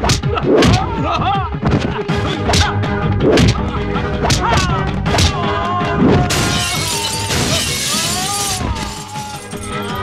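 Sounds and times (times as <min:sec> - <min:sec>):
dramatic background score: 0:00.0 - 0:06.7
glass shattering: 0:06.3 - 0:10.0.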